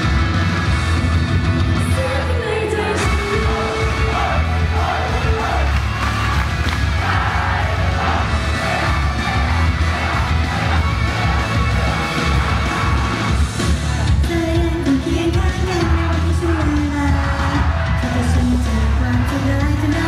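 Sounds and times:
audience shouting and cheering: 0:00.0 - 0:20.0
pop music with heavy bass beat: 0:00.0 - 0:20.0.

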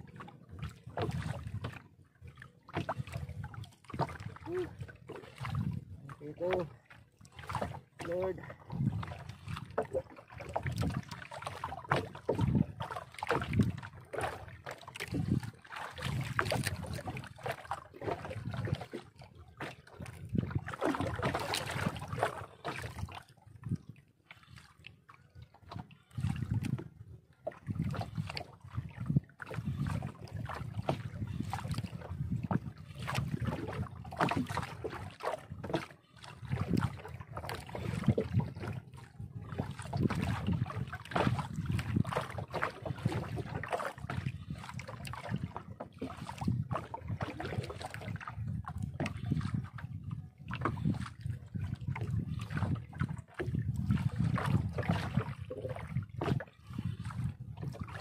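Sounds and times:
water sloshing against boat hull: 0:00.0 - 0:58.0.

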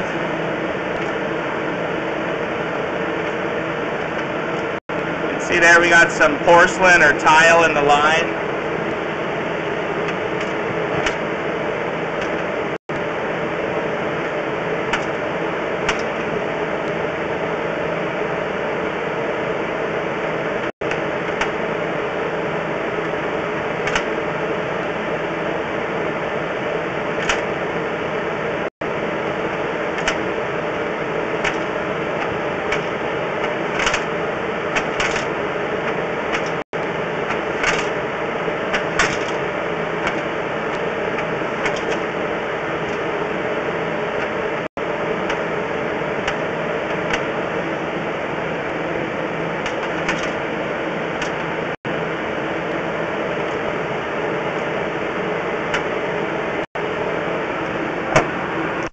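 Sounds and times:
machine hum: 0:00.0 - 0:58.9.

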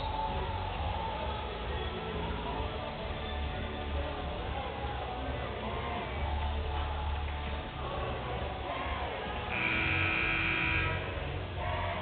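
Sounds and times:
scoreboard horn blare: 0:09.5 - 0:11.2.

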